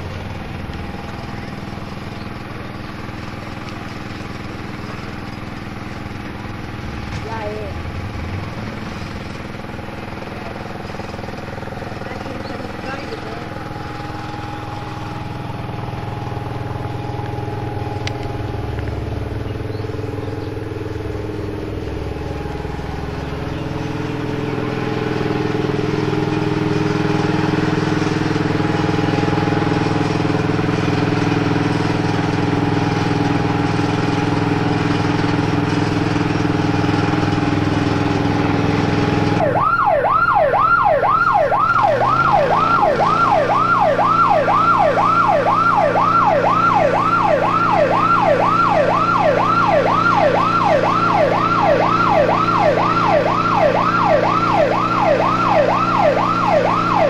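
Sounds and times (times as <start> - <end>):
fire truck engine running: 0.0 - 57.0.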